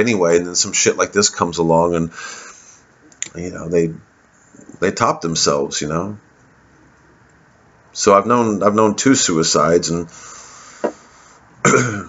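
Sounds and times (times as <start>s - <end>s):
man clearing throat: 11.6s - 12.0s.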